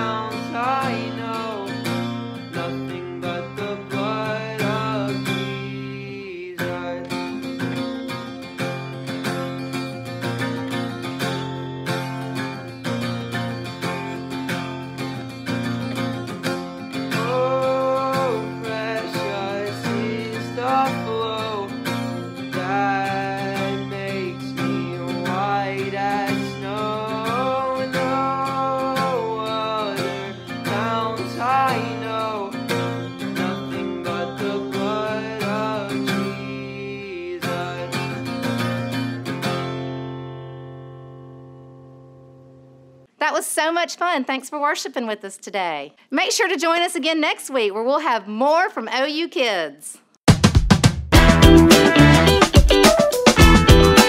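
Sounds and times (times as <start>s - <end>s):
man singing: 0.0s - 7.6s, 17.1s - 38.4s
acoustic guitar strumming: 0.0s - 43.4s, 51.1s - 54.0s.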